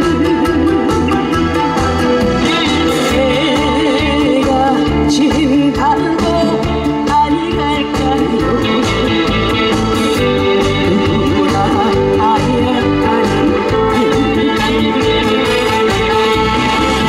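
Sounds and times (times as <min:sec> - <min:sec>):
woman singing: 0:00.0 - 0:01.8, 0:02.4 - 0:17.0
live band with brass and keyboard: 0:00.0 - 0:17.0.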